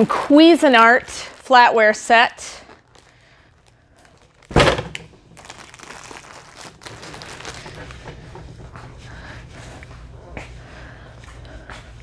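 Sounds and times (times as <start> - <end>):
heavy thunk: 4.5 - 5.1.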